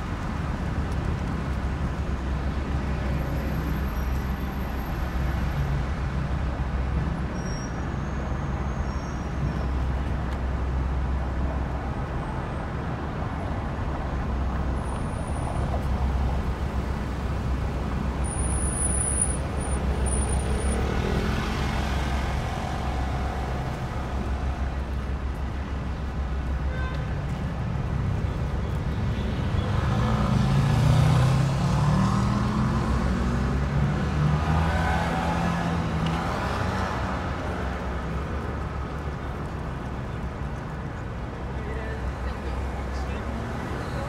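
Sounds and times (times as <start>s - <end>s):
road traffic rumble: 0.0s - 44.0s.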